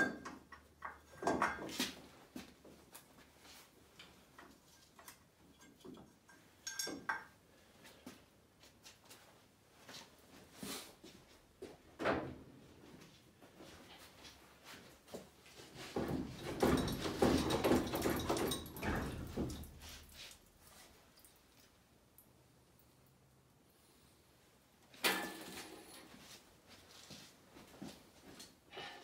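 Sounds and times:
metal clanking and knocking: 15.8s - 19.9s.

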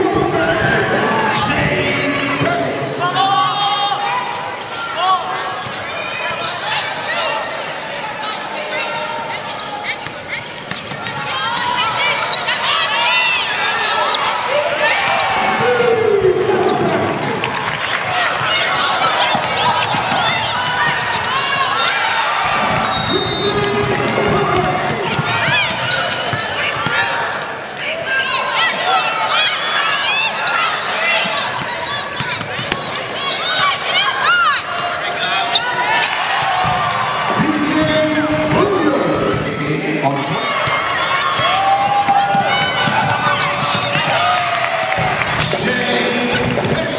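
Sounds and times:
players calling out: 0.0s - 46.9s
sneaker squeaks on hardwood: 9.8s - 11.3s
sneakers squeaking on court: 9.8s - 12.6s, 22.7s - 27.1s, 31.2s - 33.6s
basketball bouncing: 22.6s - 27.0s, 40.6s - 45.6s.

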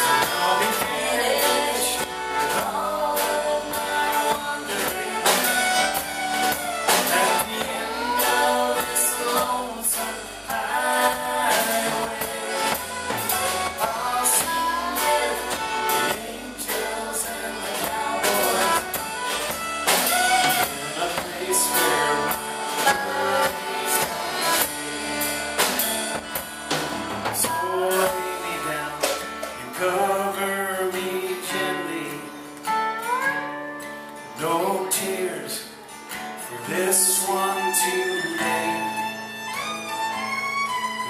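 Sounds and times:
fiddle: 0.0s - 30.9s, 32.7s - 34.1s, 34.7s - 41.0s
live country-folk band: 0.0s - 41.0s.

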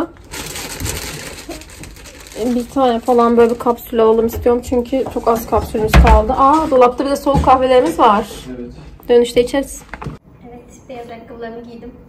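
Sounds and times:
rustling handling noise: 0.2s - 8.2s.

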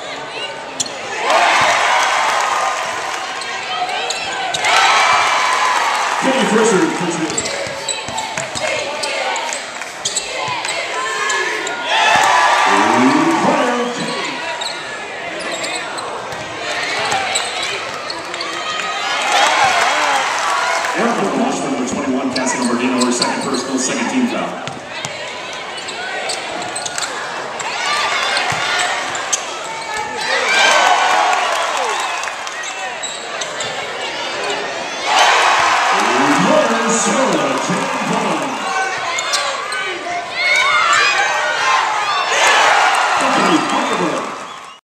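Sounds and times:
crowd voices: 0.0s - 44.8s
sneaker squeaks: 0.4s - 1.1s, 3.4s - 4.7s, 7.2s - 12.3s, 13.6s - 18.8s, 22.4s - 23.6s, 24.6s - 30.4s, 32.6s - 34.1s, 38.9s - 41.2s
basketball bouncing: 7.3s - 8.8s, 24.6s - 25.2s.

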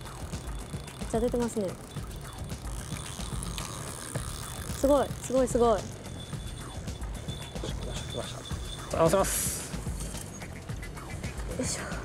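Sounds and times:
fishing reel drag clicking: 0.0s - 9.1s
faint background music: 0.0s - 12.0s.

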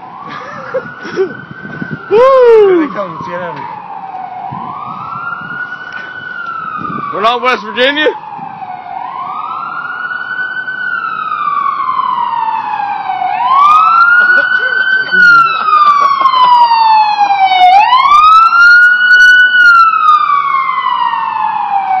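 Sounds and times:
emergency vehicle siren wailing: 0.0s - 22.0s.

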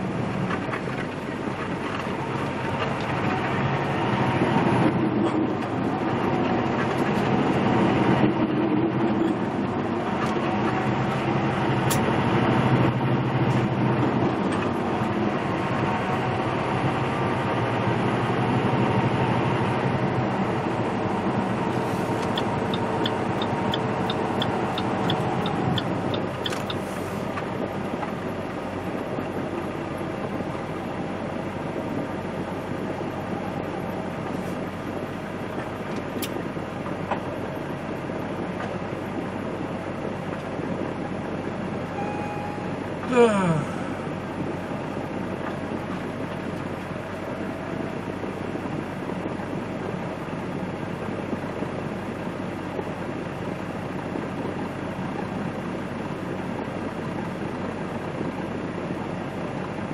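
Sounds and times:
road noise: 0.0s - 59.9s
truck diesel engine: 0.0s - 59.9s.

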